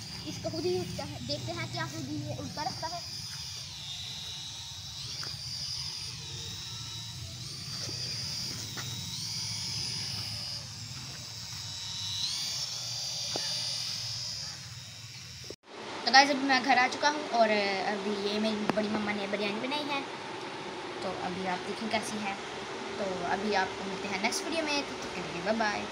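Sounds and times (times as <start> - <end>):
whine of propeller motors: 0.0 - 25.9.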